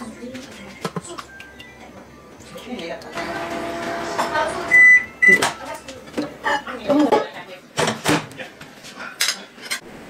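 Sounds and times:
microwave oven beeping: 3.2 - 5.7.

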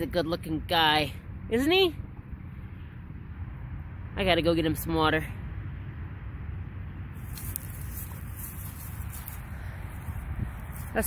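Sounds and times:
steady low rumble: 0.0 - 11.0
faint rustling and crackles: 7.2 - 11.0.

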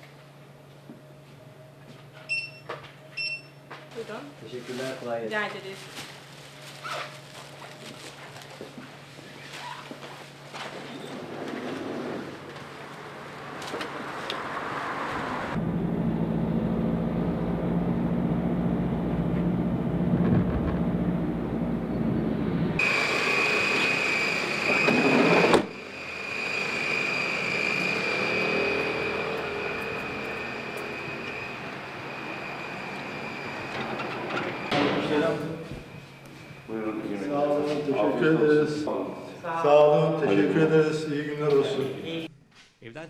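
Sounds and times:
traffic engine hum: 10.2 - 34.8
high-pitched whine: 15.1 - 39.4.

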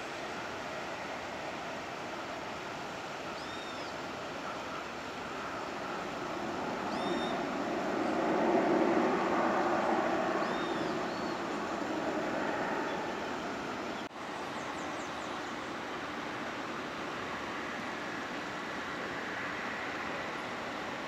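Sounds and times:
distant jet engines rumbling: 4.1 - 21.0
bird chirps: 6.9 - 7.4.

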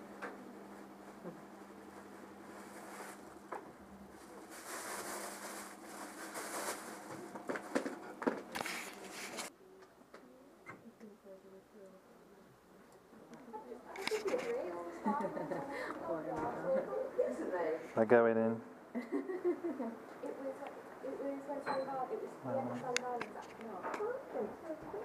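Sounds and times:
plastic bag rustling: 1.9 - 3.5, 4.1 - 9.5
bag being rummaged through: 4.4 - 7.7.

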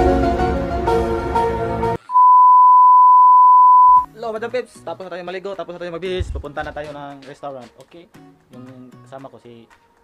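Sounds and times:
background music: 0.0 - 2.0, 4.0 - 10.0
steady test-tone beep: 2.1 - 4.1.

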